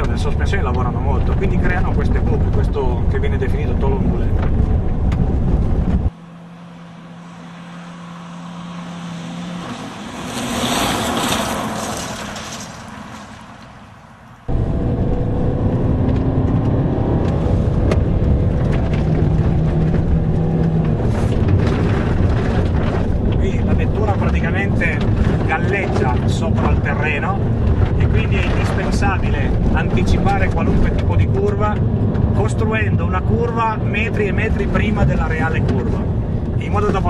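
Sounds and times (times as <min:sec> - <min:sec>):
car engine and gravel rumble: 0:00.0 - 0:37.0
car passing on gravel: 0:06.2 - 0:14.7.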